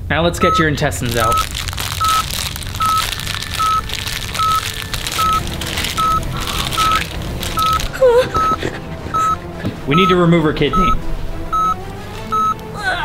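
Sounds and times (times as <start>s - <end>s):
heart-rate monitor beeping: 0.4s - 3.0s, 3.6s - 5.4s, 6.0s - 7.0s, 7.6s - 7.8s, 8.4s - 12.6s
constant rustling noise: 0.7s - 12.8s.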